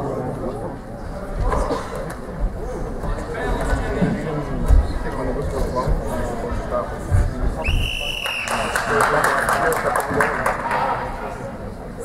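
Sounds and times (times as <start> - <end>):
referee whistle blast: 7.6 - 8.8
crowd cheering and clapping: 8.2 - 11.2.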